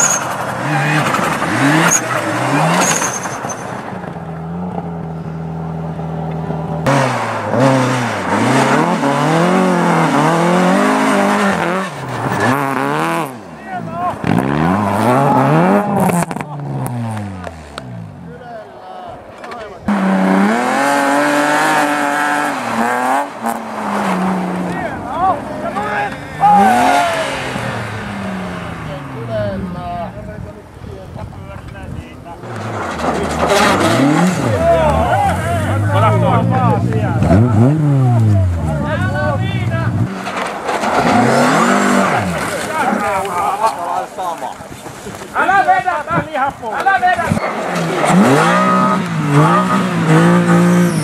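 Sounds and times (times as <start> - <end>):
rally car engines revving: 0.0 - 51.0
people shouting: 24.8 - 27.6.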